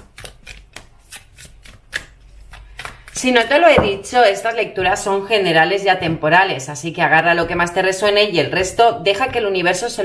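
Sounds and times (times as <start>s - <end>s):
cards being shuffled: 0.0s - 3.2s.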